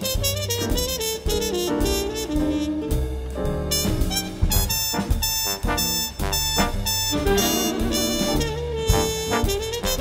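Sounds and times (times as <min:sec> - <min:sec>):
big band latin jazz: 0:00.0 - 0:10.0
steady percussive beat: 0:00.0 - 0:10.0
trumpet solo: 0:00.0 - 0:10.0
horn section held notes: 0:03.7 - 0:10.0.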